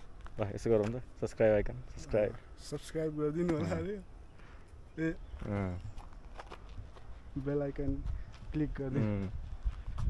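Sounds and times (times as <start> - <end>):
man speaking: 0.4 - 4.1, 7.4 - 9.4
footsteps on dirt path: 5.2 - 10.0.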